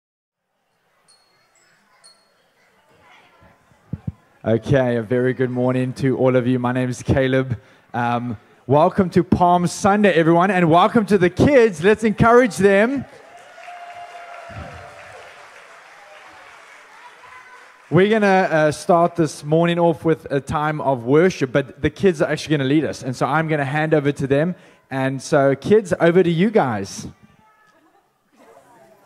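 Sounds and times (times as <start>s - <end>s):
thin high-pitched tones: 0.6s - 2.9s
audience clapping: 12.8s - 19.2s.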